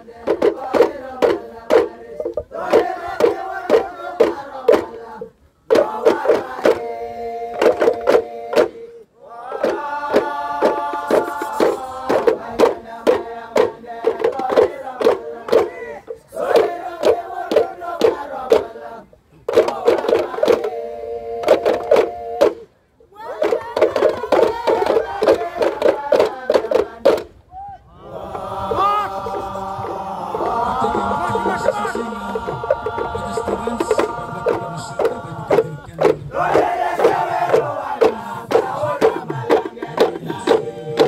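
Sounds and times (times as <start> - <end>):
group chanting rhythmically: 0.0 - 27.3, 27.9 - 41.0
sharp beats: 29.1 - 41.0.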